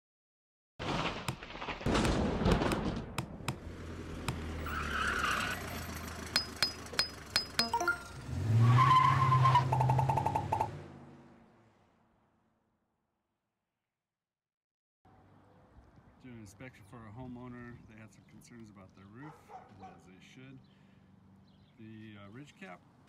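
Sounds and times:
vehicle driving in: 3.6s - 12.6s.

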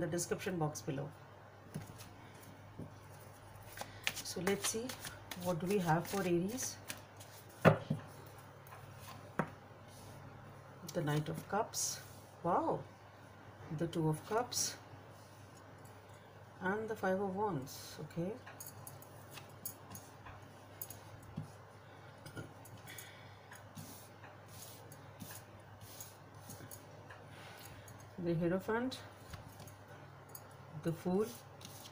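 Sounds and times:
cards clicking and sliding: 3.7s - 7.4s.

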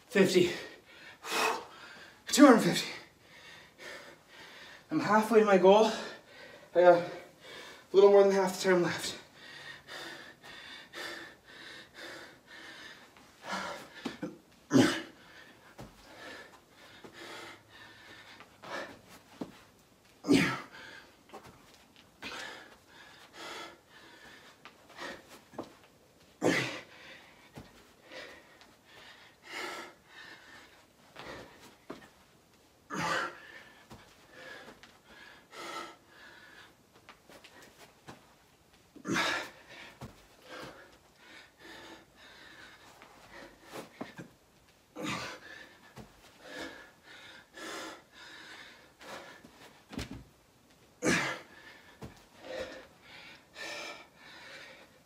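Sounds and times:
man breathing hard: 0.4s - 4.9s, 5.8s - 8.0s, 9.0s - 19.6s, 20.3s - 25.8s, 26.4s - 32.1s, 32.9s - 38.3s, 39.0s - 49.9s, 51.0s - 55.0s.

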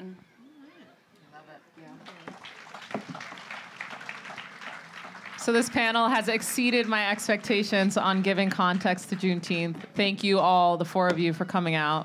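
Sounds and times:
light audience applause: 1.8s - 10.3s.

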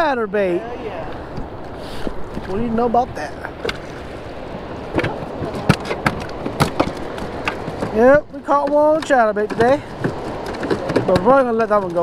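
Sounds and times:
water splashing against boat: 0.8s - 12.0s
knocks on boat: 4.9s - 12.0s.

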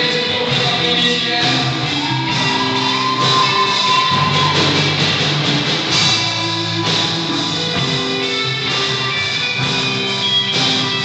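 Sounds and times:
bass guitar: 0.0s - 11.0s
drum kit: 0.0s - 11.0s
electric guitars: 0.0s - 11.0s.

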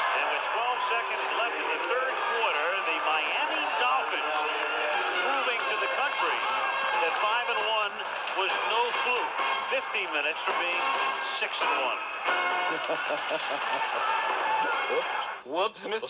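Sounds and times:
voices talking over one another: 0.0s - 16.0s.

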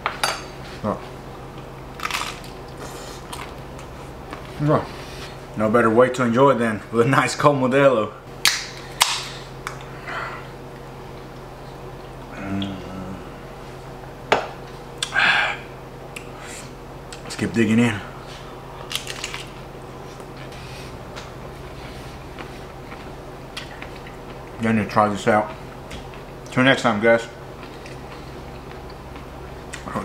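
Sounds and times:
low hum: 0.0s - 30.0s
person chewing crunchy food: 18.8s - 24.6s, 27.4s - 29.9s.

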